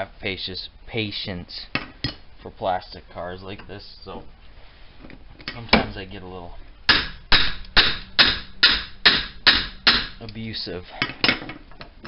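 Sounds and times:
hammer striking metal: 6.9s - 10.2s.

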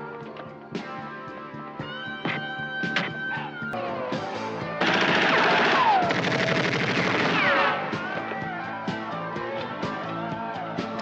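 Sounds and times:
film score music: 0.0s - 11.0s
automatic rifle fire: 4.8s - 7.8s.

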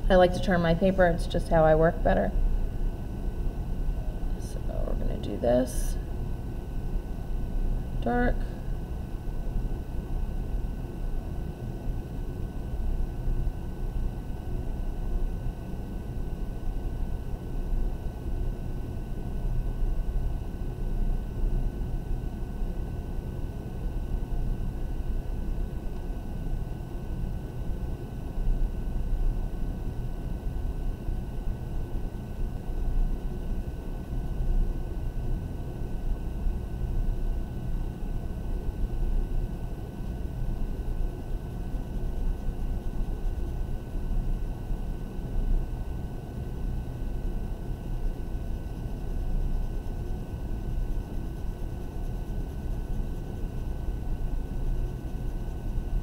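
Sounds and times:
faint steady high whine: 0.0s - 56.0s.

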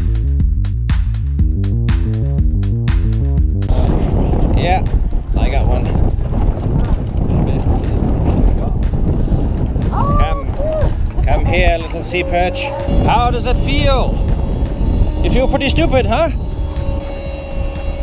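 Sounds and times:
electronic music with beat: 0.0s - 18.0s
wind and sea rumble: 3.5s - 18.0s.

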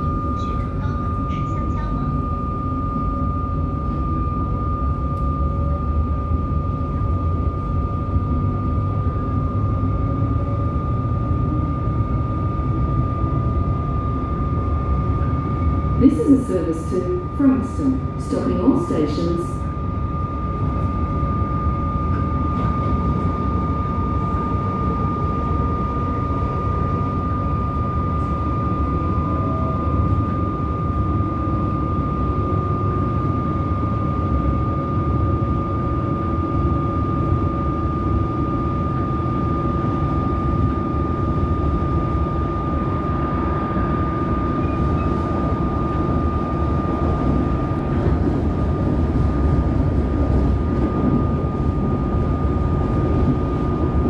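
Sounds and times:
high whine: 0.0s - 54.0s
low hum: 0.0s - 54.0s
train wheels rumbling on rails: 0.0s - 54.0s.

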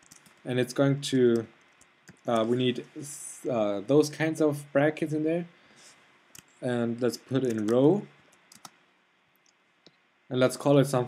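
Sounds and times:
keyboard keystrokes: 7.5s - 7.8s.

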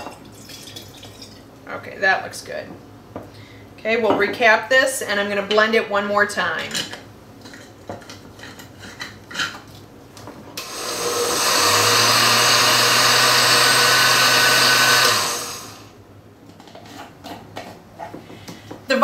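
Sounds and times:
blender running: 10.6s - 16.0s.

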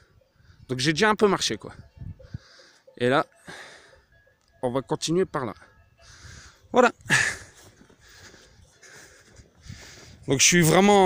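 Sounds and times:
person breathing hard: 2.2s - 4.1s, 6.0s - 10.3s.

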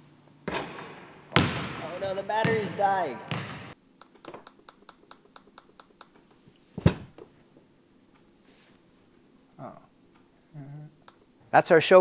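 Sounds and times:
basketball bouncing on gym floor: 0.4s - 3.8s.

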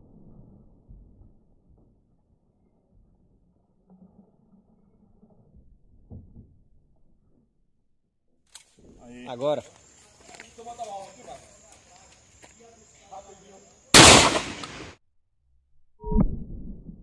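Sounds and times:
outdoor ambience: 0.0s - 17.0s.

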